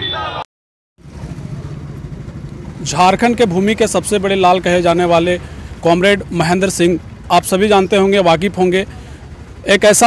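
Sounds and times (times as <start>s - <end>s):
motorcycle engines idling: 1.0s - 10.0s
voices: 1.2s - 10.0s.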